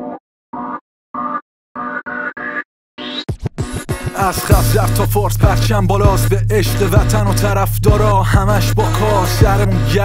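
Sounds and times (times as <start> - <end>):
turntable scratching: 3.0 - 6.2
pitched chord stabs: 4.1 - 10.0.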